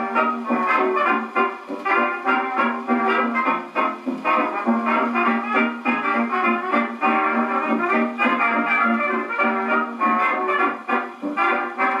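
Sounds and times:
dance band on gramophone: 0.0s - 12.0s.

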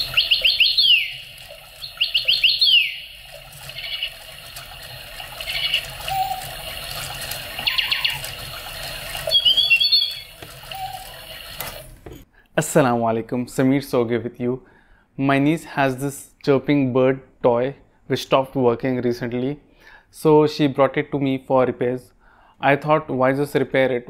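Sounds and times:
electronic birdsong chirps and trills: 0.0s - 11.6s.

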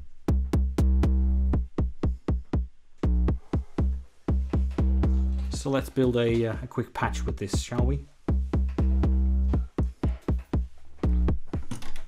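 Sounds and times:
synthesized kick drums: 0.0s - 11.8s.

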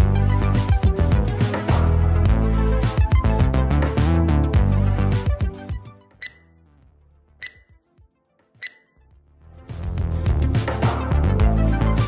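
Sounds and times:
background music: 0.0s - 12.0s
high electronic dings: 6.2s - 6.4s, 7.4s - 7.6s, 8.6s - 8.8s.

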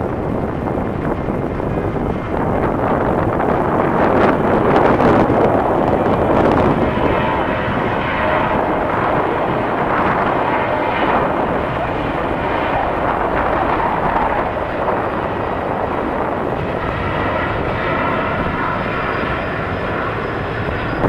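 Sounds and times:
faint engine whine: 0.0s - 21.0s
jet engines rushing: 0.0s - 21.0s.

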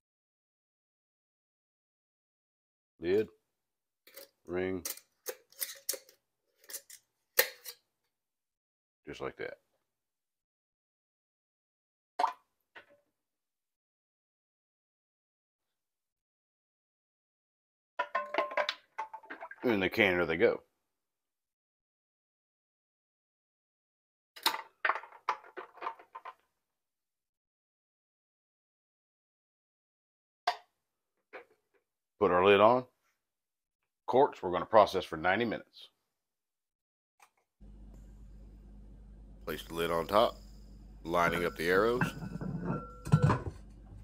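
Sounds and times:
glass jars clinking: 41.1s - 43.7s.

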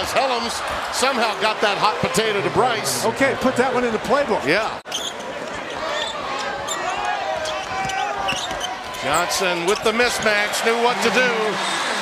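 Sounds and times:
arena crowd noise: 0.0s - 12.0s
sneaker squeaks: 4.9s - 10.0s.

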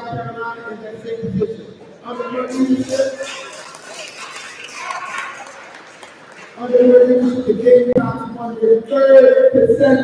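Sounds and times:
large hall room noise: 0.0s - 10.0s.

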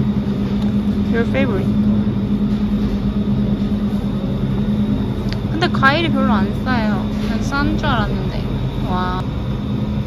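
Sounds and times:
refrigerated cases humming: 0.0s - 10.0s.

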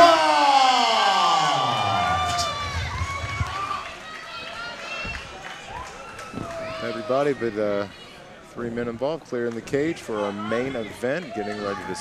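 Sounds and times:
crowd cheering: 0.0s - 7.4s.

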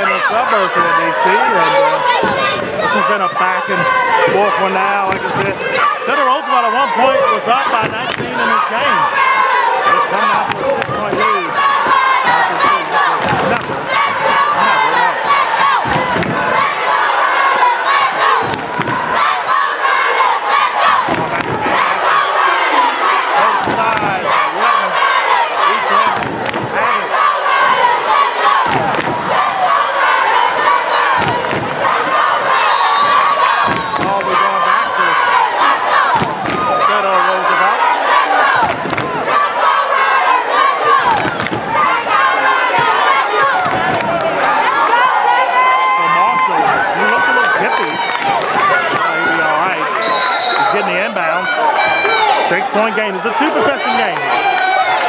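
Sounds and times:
crowd shouting and cheering: 0.0s - 55.0s
sharp claps or stomps: 7.8s - 8.5s, 12.6s - 13.9s, 15.8s - 16.5s, 18.4s - 19.1s, 21.1s - 21.7s, 23.6s - 24.1s, 26.1s - 26.8s, 28.6s - 29.3s, 31.2s - 31.8s, 33.0s - 34.3s, 36.2s - 36.7s, 38.6s - 39.2s, 41.1s - 41.7s, 43.6s - 44.4s.

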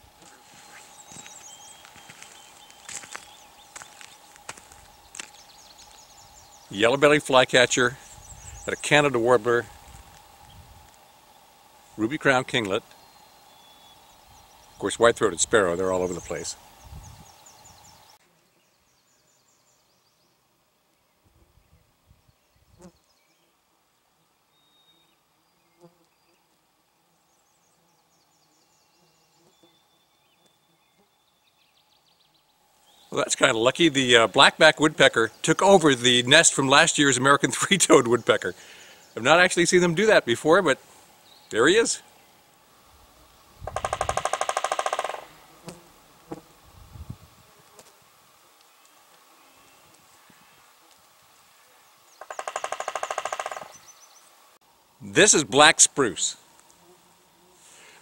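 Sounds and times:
distant songbirds: 0.0s - 45.8s, 48.6s - 50.8s, 51.5s - 54.6s
woodpecker drumming on tree: 43.6s - 45.5s, 52.1s - 54.0s.

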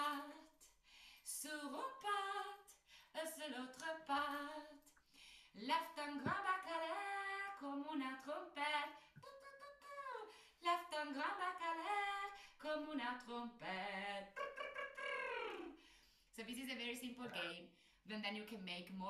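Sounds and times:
woman singing unaccompanied: 0.0s - 0.6s, 1.3s - 4.9s, 5.6s - 15.8s.

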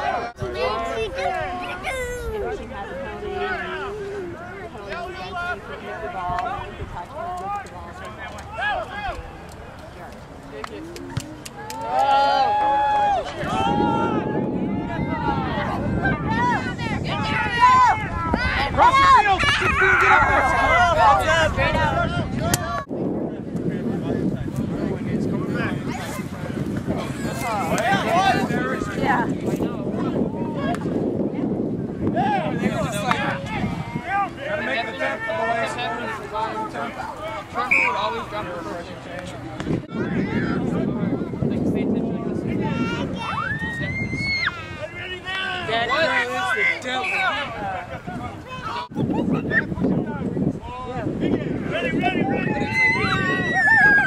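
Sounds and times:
wind on microphone: 10.3s - 34.9s, 38.2s - 46.0s, 47.3s - 54.0s
people shouting: 52.1s - 54.0s.

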